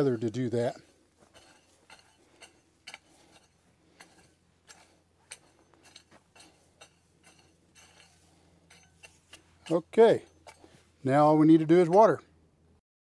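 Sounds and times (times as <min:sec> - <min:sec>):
hoe scraping through stony soil: 0:00.0 - 0:12.1.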